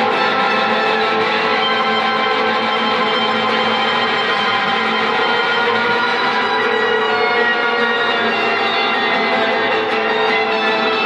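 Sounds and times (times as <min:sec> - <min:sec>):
droning electric guitars: 0:00.0 - 0:11.0.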